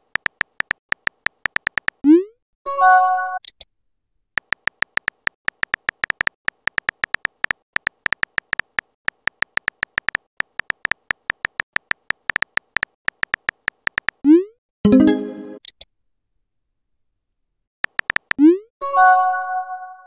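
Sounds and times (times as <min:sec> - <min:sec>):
keyboard typing clicks: 0:00.0 - 0:02.0, 0:04.4 - 0:14.2, 0:17.8 - 0:18.5.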